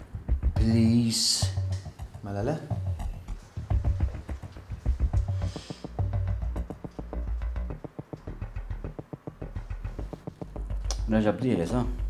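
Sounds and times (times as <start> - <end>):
music with fast pulse and bass: 0.0 - 12.0.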